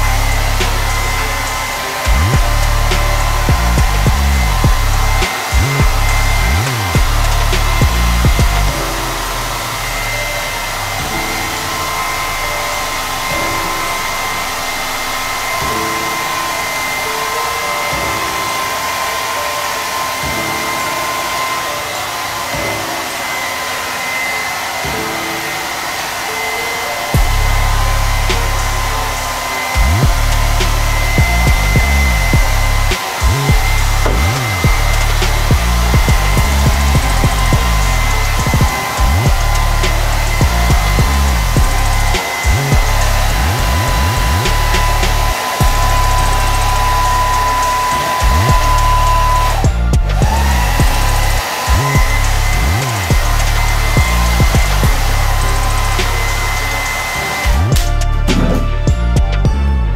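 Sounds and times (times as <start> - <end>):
deep low rumble: 0.0 - 8.9, 27.2 - 46.6, 52.0 - 56.0
hair dryer blowing: 0.0 - 59.0.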